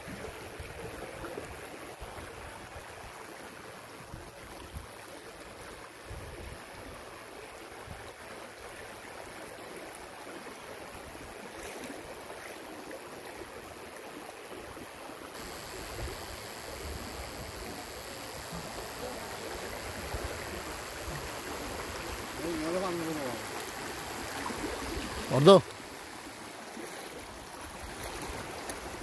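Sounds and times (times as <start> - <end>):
moving floodwater: 0.0 - 29.0
wind: 0.0 - 29.0.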